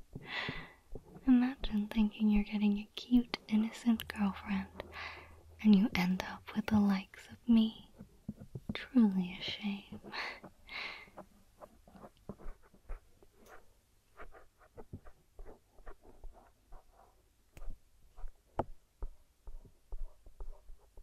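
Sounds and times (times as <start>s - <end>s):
woman whispering: 1.2s - 5.0s, 5.6s - 7.9s, 8.8s - 10.4s
clicks and scratches near microphone: 9.6s - 21.0s.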